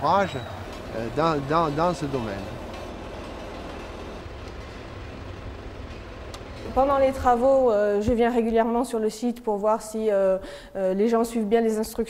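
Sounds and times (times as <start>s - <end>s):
road roller rumbling over gravel: 0.0s - 8.2s.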